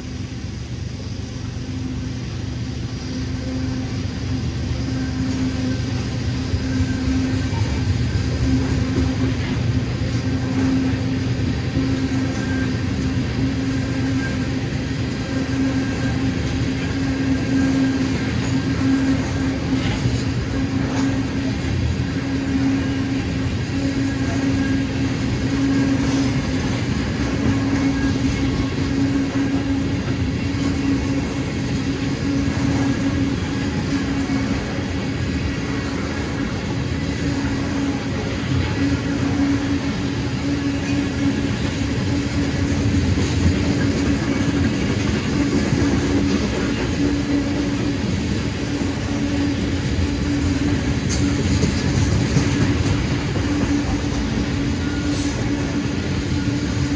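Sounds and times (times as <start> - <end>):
freight train wheels on rails: 0.0 - 56.9.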